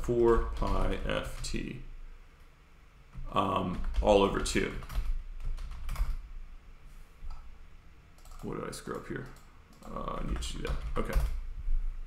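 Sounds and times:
keystrokes on computer keyboard: 0.2 - 1.6, 3.7 - 6.2, 8.2 - 11.4.

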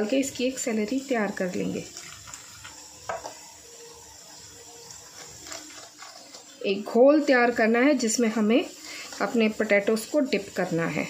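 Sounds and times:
water poured into steel bowl: 0.5 - 11.0
spoon stirring batter in bowl: 4.8 - 6.6.

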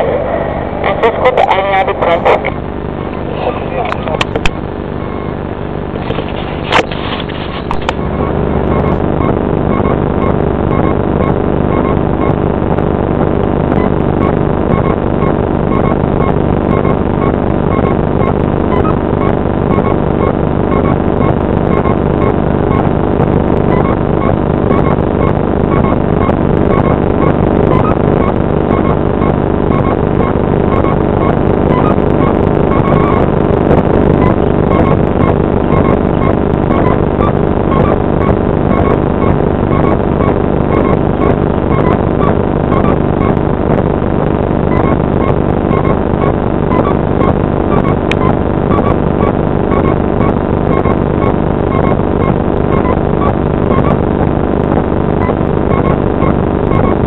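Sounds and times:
airliner engine drone: 0.0 - 57.0.

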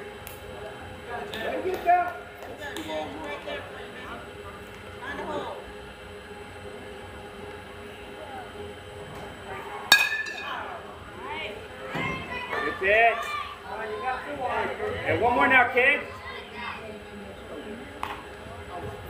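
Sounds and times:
spectators' voices and calls: 0.0 - 19.0.

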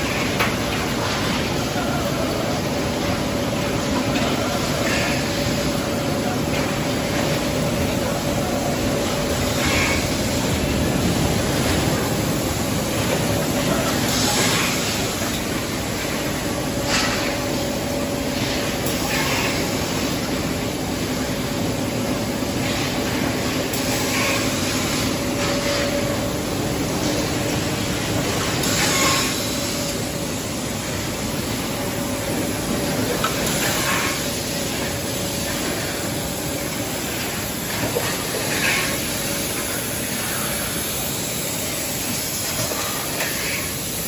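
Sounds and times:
low constant hum: 0.0 - 43.7
loud machinery noise: 0.0 - 44.0
industrial hiss: 3.7 - 44.0.

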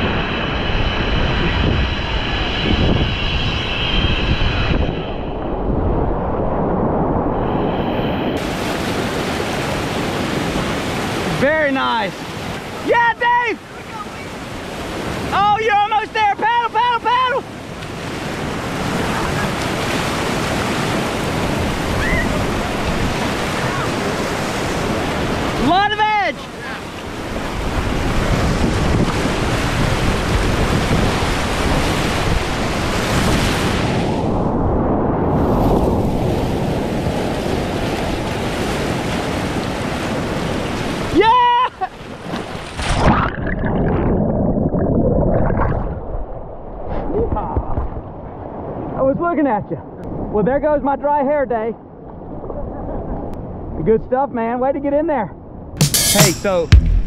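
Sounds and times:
wind buffeting microphone: 0.0 - 11.4, 26.6 - 41.1, 42.9 - 49.0
whitewater rushing and splashing: 8.4 - 34.1
people whooping: 21.9 - 22.4.

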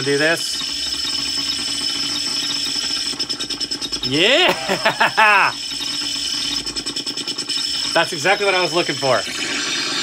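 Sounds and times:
stuttering glitch noise: 0.0 - 10.0.

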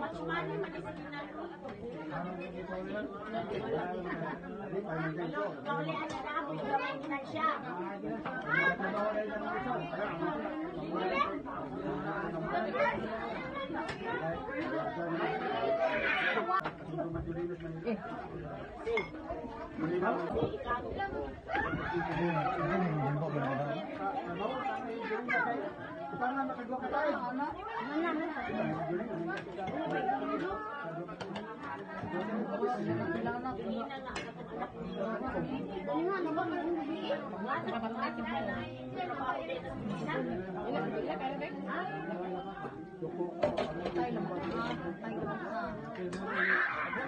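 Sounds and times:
crowd of people chattering: 0.0 - 47.0.

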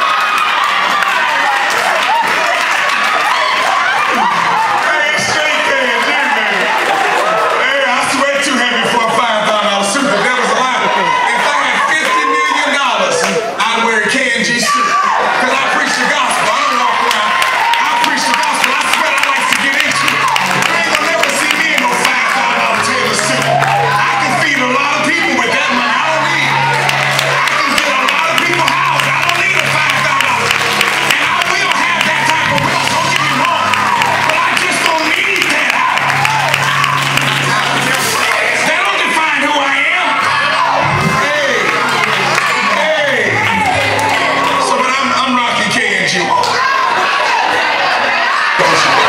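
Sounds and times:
people clapping: 0.0 - 13.6, 15.0 - 49.0
congregation shouting: 0.0 - 49.0
crowd cheering and calling out: 0.0 - 49.0
keyboard music: 15.4 - 46.8
low bass notes: 21.6 - 38.6, 40.3 - 42.6.

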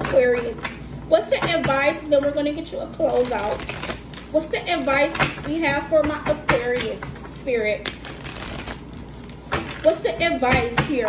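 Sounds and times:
cards being shuffled: 3.1 - 5.1, 7.9 - 9.8
handling of cards: 3.1 - 5.1, 7.9 - 9.9.

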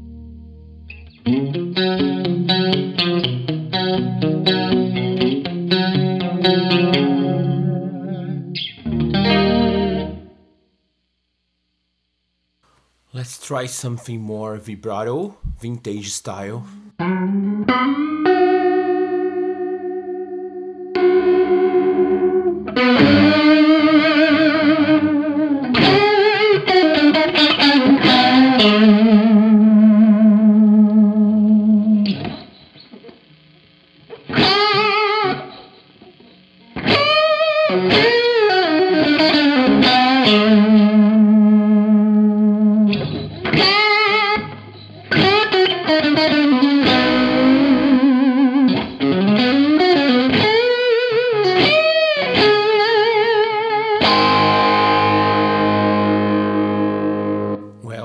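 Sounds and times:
electric guitar with vibrato: 0.0 - 10.6, 15.4 - 33.3, 34.0 - 58.0.

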